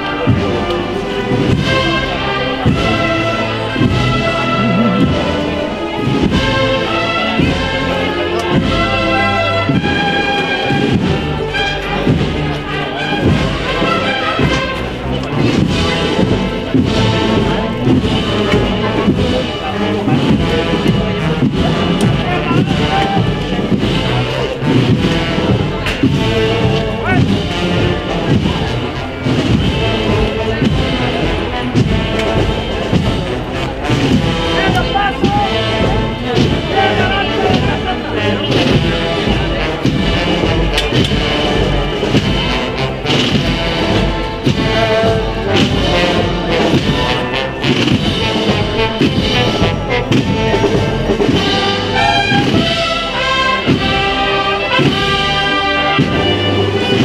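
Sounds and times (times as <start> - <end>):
drum strokes: 0.0 - 57.0
wind band playing a march: 0.0 - 57.0.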